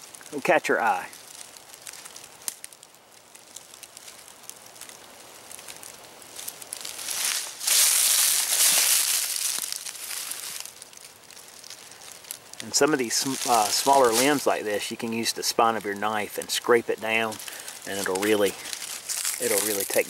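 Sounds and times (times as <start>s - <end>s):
leaves crunching underfoot: 0.0s - 20.0s.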